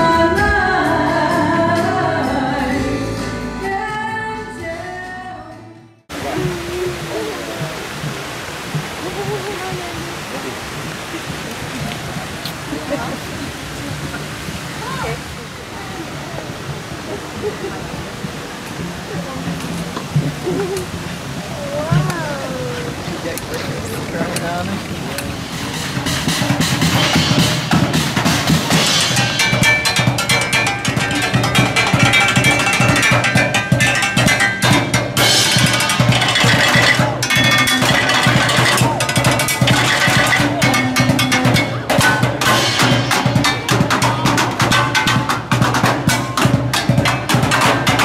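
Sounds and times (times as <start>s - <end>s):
drumming on metal cans and buckets: 6.1s - 13.4s, 18.1s - 48.0s
murmur of voices: 6.1s - 32.4s, 35.2s - 48.0s.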